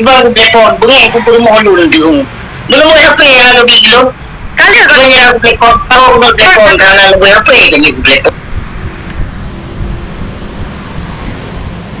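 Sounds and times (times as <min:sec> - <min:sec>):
rushing noise with low rumble: 0:00.0 - 0:12.0.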